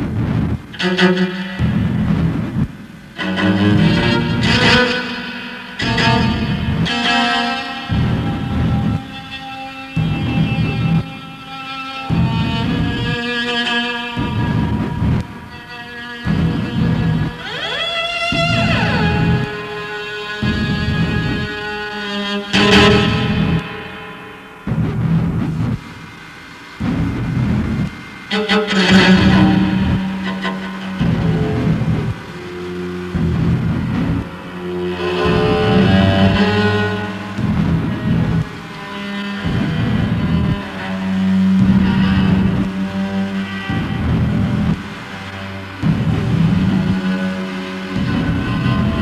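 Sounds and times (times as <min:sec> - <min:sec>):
out of tune cello notes: 0:00.7 - 0:25.9, 0:26.8 - 0:49.0.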